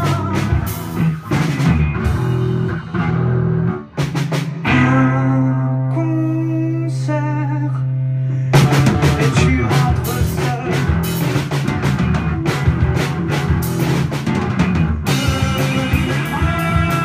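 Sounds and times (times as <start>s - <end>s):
person singing: 0.0s - 1.1s, 4.6s - 11.2s, 15.1s - 17.0s
rock band playing: 0.0s - 17.0s.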